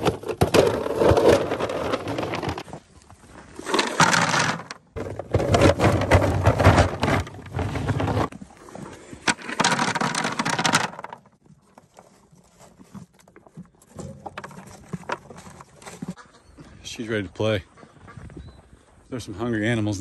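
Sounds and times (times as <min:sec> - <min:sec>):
feed cubes clattering into trough: 0:00.0 - 0:02.7, 0:03.7 - 0:08.3, 0:09.3 - 0:11.3.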